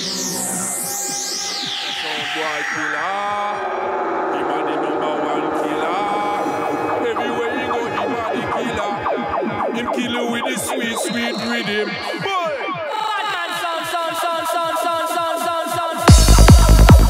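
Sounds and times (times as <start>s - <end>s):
electronic trance music: 0.0s - 17.0s
sampled voice-like sound: 0.1s - 13.3s.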